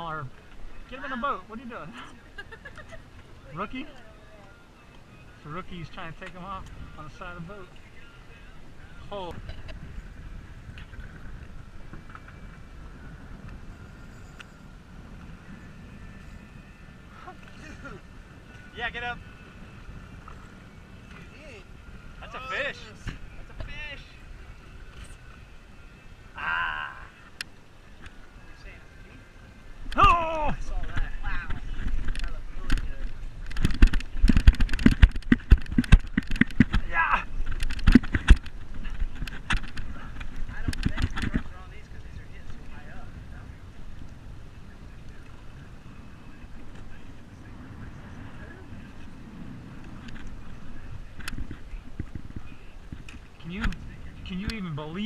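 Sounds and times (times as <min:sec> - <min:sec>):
people shouting exclamations: 0:30.0 - 0:30.6
irregular knocks and thumps: 0:33.5 - 0:41.5.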